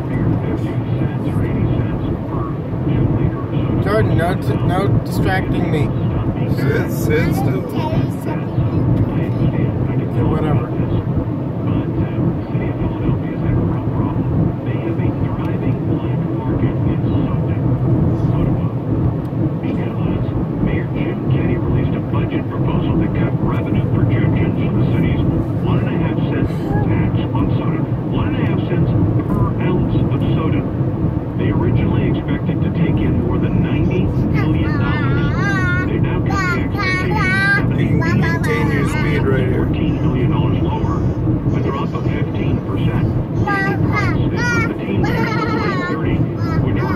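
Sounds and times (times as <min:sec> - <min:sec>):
car cabin road rumble: 0:00.0 - 0:46.9.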